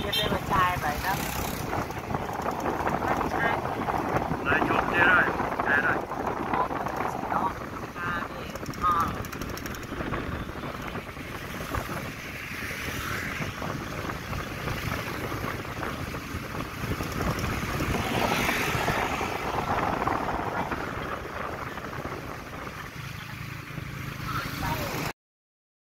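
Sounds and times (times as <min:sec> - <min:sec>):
road and wind noise: 0:00.0 - 0:25.2
small engine running: 0:05.8 - 0:12.0.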